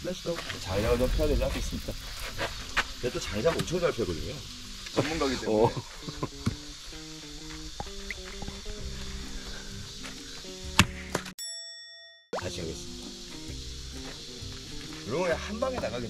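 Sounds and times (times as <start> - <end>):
axe striking a log: 10.7 - 11.3
short ringing ding: 11.4 - 12.4
background music: 12.4 - 16.0.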